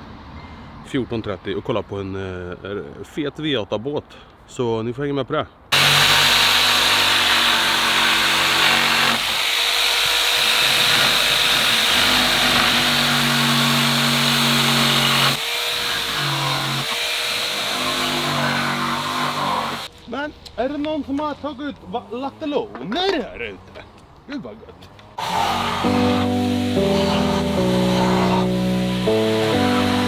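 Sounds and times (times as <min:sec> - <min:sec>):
power tool motor whine: 0:05.8 - 0:19.9, 0:25.2 - 0:30.0.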